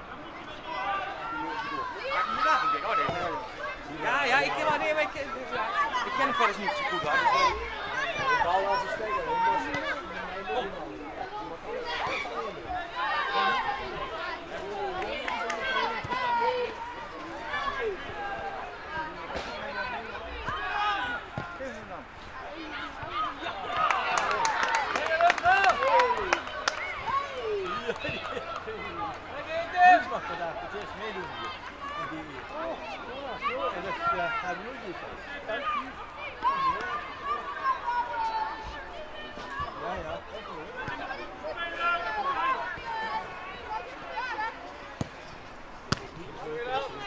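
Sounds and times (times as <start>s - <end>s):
people shouting and chattering: 0.0s - 47.0s
people talking and calling out: 0.0s - 47.0s.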